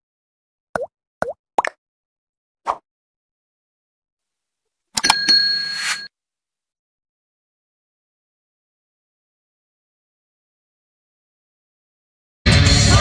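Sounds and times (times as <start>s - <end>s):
bright chime: 5.0s - 6.1s.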